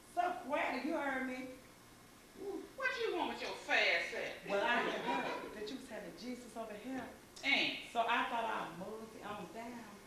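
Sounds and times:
person talking: 4.4 - 5.8.

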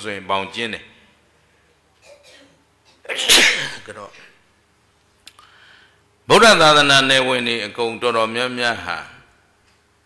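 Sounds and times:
man sneezing: 2.0 - 3.9.

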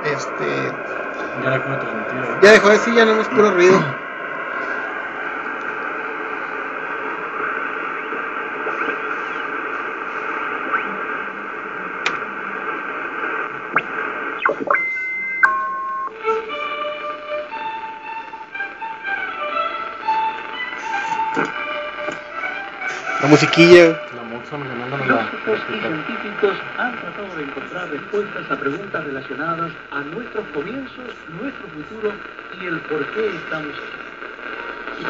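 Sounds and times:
radio band noise hiss: 0.0 - 35.0
held tones stepping down: 13.6 - 16.4
simple melody of short notes: 15.4 - 16.2.

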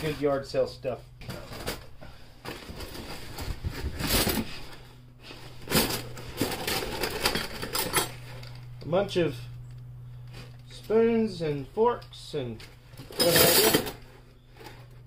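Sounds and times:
cardboard rustling: 1.3 - 7.3.

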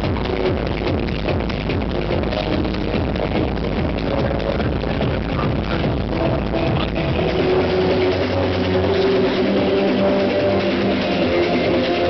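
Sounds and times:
loud techno: 0.0 - 12.0.

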